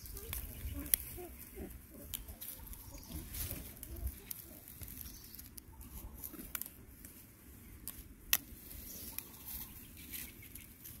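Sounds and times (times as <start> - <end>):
dry leaves crackling and rustling: 0.0 - 11.0.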